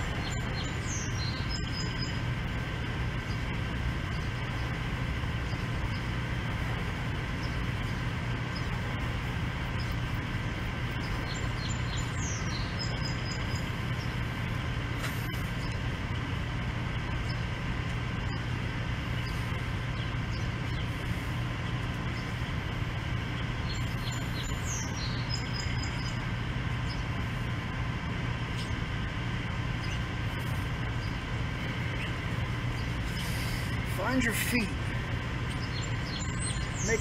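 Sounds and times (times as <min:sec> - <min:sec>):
machine-like hum: 0:00.0 - 0:37.0
outdoor background noise: 0:00.0 - 0:37.0
bird singing high falling phrase: 0:35.6 - 0:37.0.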